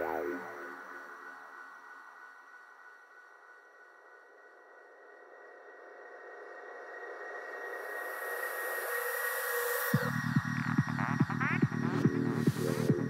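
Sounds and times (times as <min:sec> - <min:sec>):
faint synthesizer tones: 0:00.0 - 0:01.8.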